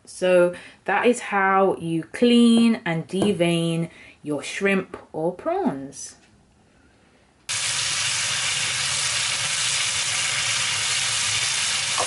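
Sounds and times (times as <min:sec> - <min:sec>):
prawns sizzling in a pan: 0:07.5 - 0:12.0.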